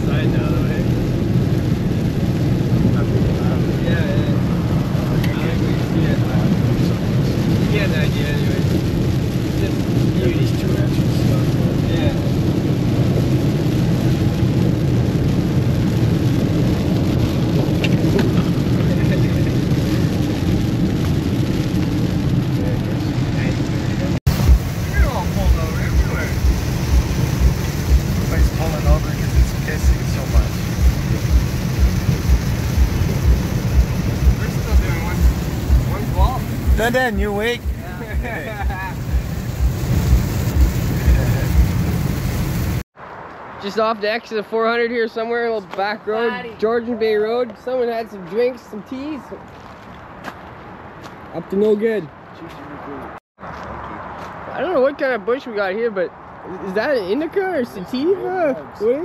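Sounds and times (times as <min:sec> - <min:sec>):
rain on windshield: 0:00.0 - 0:42.9
tyre and road noise: 0:00.0 - 0:59.0
regular low thumps: 0:24.2 - 0:42.8.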